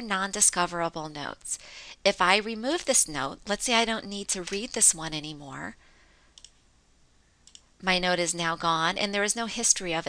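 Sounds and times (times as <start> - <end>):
faint computer mouse clicks: 6.4 - 6.6, 7.4 - 7.7.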